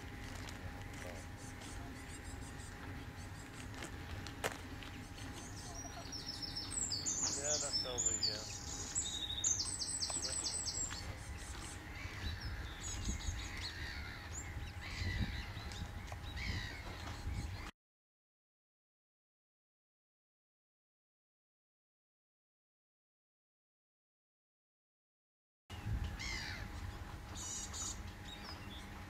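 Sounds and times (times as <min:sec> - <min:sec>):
songbirds singing: 0:00.0 - 0:17.7, 0:25.7 - 0:29.0
steady low rumble: 0:00.0 - 0:17.7.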